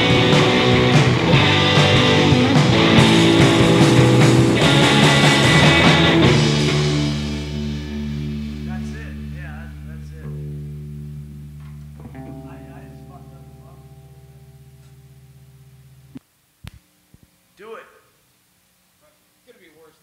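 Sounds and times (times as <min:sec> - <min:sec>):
ringing guitar and bass chord: 0:00.0 - 0:16.2
strings muted abruptly: 0:00.0 - 0:16.2
guitar note struck: 0:00.0 - 0:16.8.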